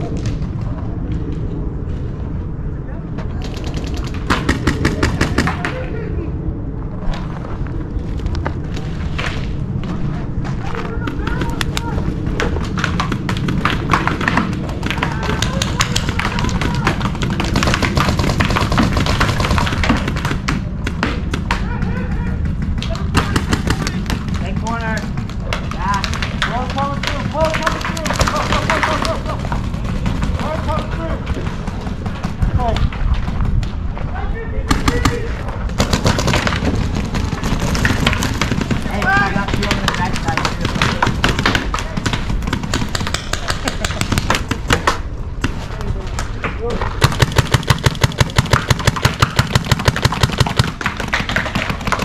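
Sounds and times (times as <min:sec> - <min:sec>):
paintball markers firing: 0:03.4 - 0:05.8, 0:11.1 - 0:33.7, 0:34.7 - 0:52.0
distant shouting: 0:10.1 - 0:18.0, 0:19.0 - 0:32.8, 0:34.0 - 0:45.2.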